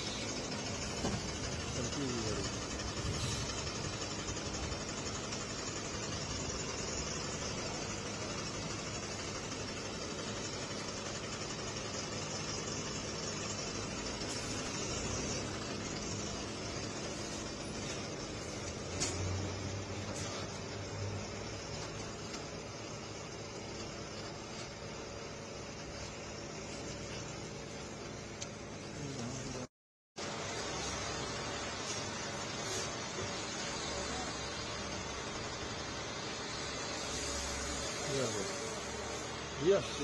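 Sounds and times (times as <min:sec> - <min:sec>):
truck engine idling: 0:00.0 - 0:40.0
short thump with rumble: 0:00.8 - 0:01.6.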